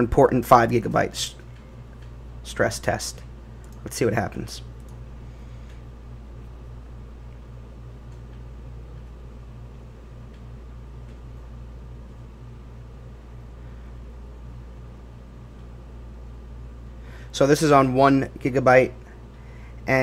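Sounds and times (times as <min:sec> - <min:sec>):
machinery hum with faint hiss: 0:00.0 - 0:20.0.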